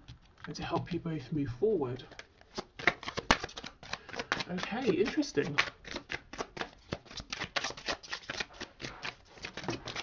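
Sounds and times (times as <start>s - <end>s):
cards clicking and flicking: 2.1s - 10.0s.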